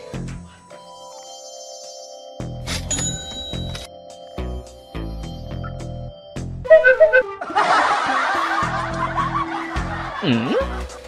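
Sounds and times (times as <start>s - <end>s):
background music with steady beat: 0.0s - 11.0s
laugh track crowd laughing: 6.8s - 11.0s.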